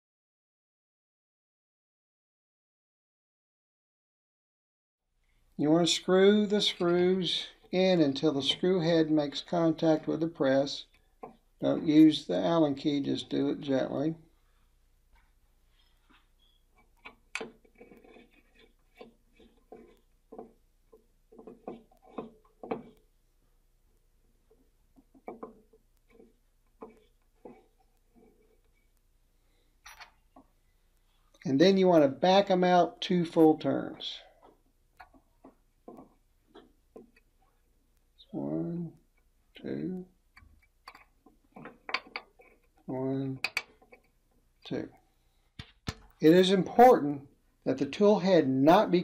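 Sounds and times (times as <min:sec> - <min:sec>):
small clicks and scrapes of screws: 0:15.2 - 0:23.1, 0:24.4 - 0:31.5, 0:40.3 - 0:44.4.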